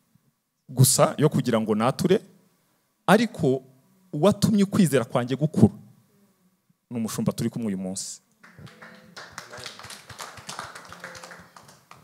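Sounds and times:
scattered hand clapping: 8.4 - 12.0.

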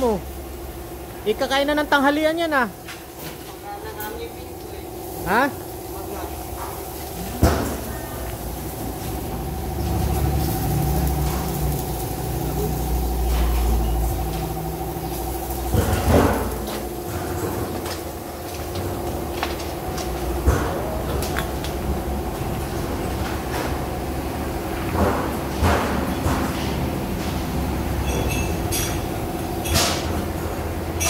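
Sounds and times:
steady machine hum: 0.0 - 31.0.

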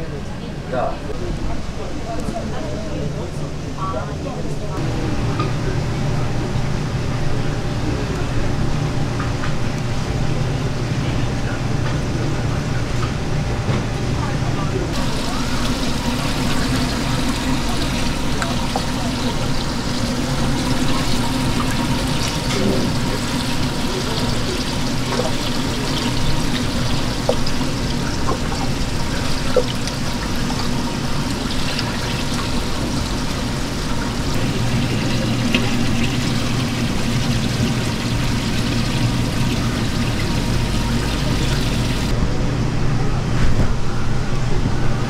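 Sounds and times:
water running and bubbling: 14.9 - 42.2.

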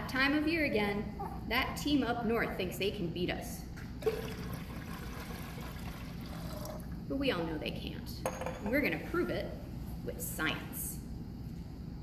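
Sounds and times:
liquid pouring into glass beakers: 4.0 - 7.0.

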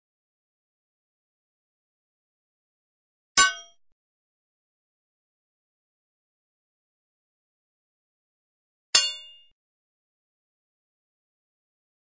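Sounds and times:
metallic clang: 3.4 - 3.8.

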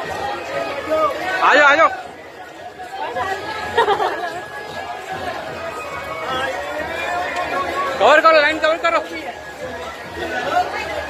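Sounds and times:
several people talking at once: 0.0 - 11.0.

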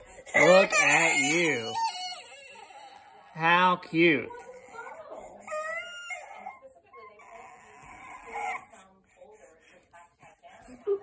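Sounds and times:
toddler fussing and whimpering: 0.0 - 3.4, 4.4 - 8.9.

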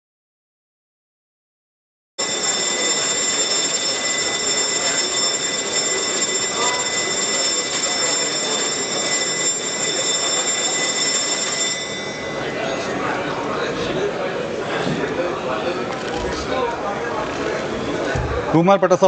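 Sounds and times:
electric bell ringing: 2.2 - 13.8
murmur of voices: 2.2 - 19.0.

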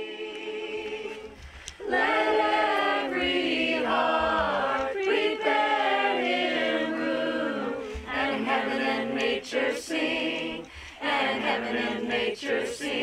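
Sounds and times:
group singing a cappella: 0.0 - 13.0.

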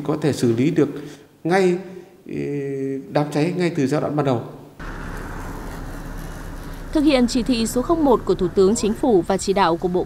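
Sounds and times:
low traffic rumble: 4.8 - 10.0.

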